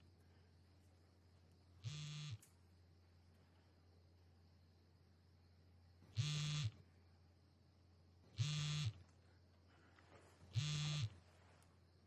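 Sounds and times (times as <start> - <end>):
mobile phone vibrating: 1.8 - 2.4, 6.1 - 6.8, 8.3 - 9.0, 10.5 - 11.2.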